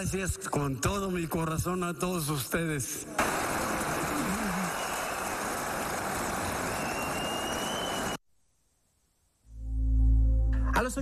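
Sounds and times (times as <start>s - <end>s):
audience applauding: 3.2s - 8.2s.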